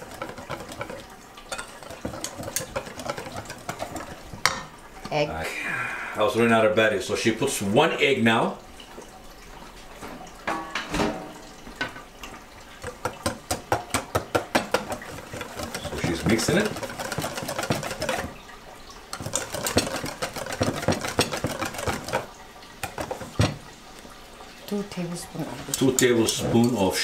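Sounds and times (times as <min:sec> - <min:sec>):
whisk clicking against metal bowl: 0:00.0 - 0:04.6, 0:12.8 - 0:18.3, 0:19.1 - 0:23.6.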